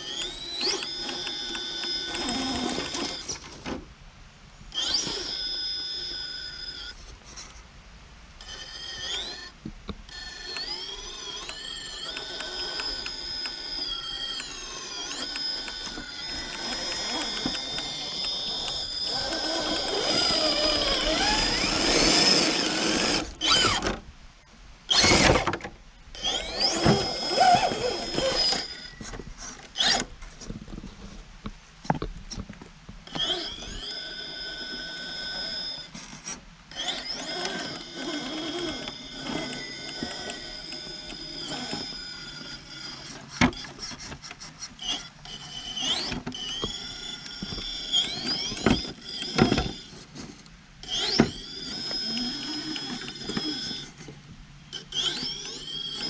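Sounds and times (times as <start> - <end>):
electric motor whining: 0.0 - 3.6, 4.7 - 7.0, 8.4 - 24.0, 24.9 - 30.1, 33.0 - 36.0, 36.7 - 50.1, 50.8 - 56.0
gears and tyres ticking on rock: 10.4 - 23.8.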